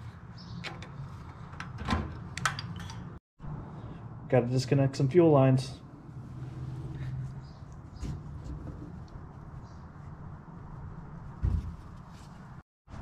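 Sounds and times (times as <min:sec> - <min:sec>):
dull thump: 0:11.4 - 0:12.0.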